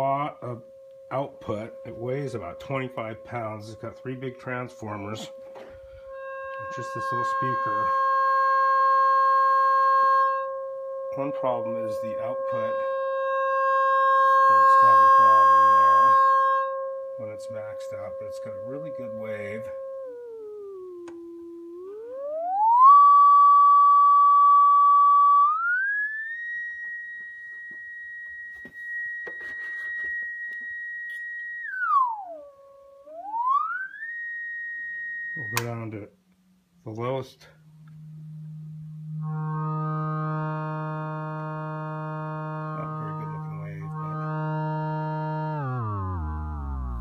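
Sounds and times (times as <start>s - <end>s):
distorted oscillator tone: 0.0s - 47.0s.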